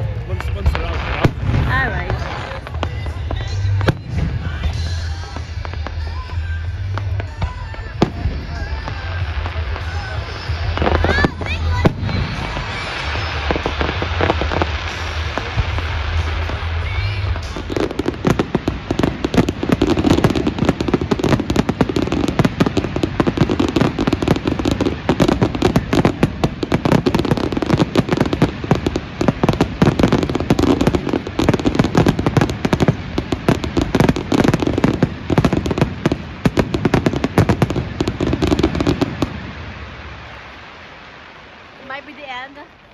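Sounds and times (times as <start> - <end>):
fireworks bangs and crackling: 0.0 - 42.9.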